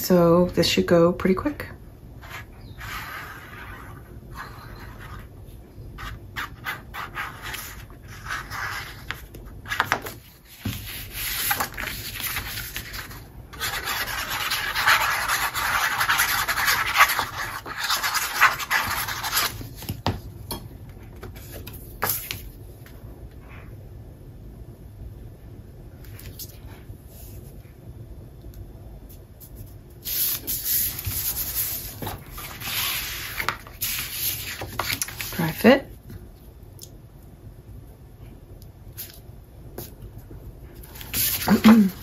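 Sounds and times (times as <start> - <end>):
hands rubbing paper: 6.4 - 19.6
paper rustling: 6.4 - 20.0, 30.1 - 35.5, 40.8 - 42.0.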